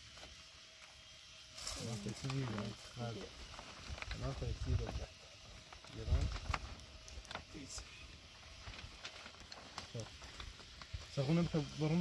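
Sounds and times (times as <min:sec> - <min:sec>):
plastic sheeting rustling: 0:01.7 - 0:05.1, 0:05.7 - 0:12.0.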